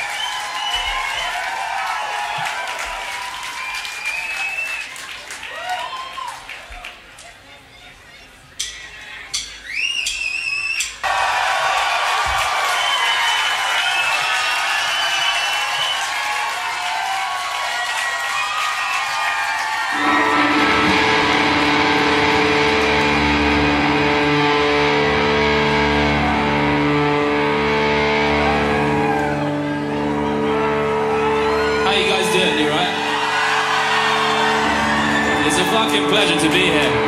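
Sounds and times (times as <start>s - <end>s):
whistle-like tones: 8.6s - 11.0s
amplified electric bass: 20.0s - 32.4s.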